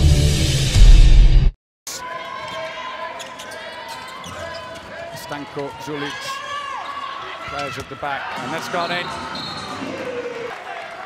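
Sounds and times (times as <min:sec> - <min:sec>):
players and arena voices: 0:01.9 - 0:11.0.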